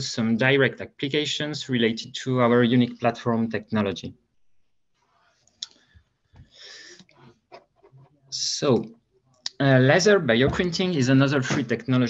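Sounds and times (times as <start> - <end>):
person speaking: 0.0 - 4.1, 8.3 - 8.9, 9.5 - 12.0
soft breath at microphone: 5.8 - 7.4.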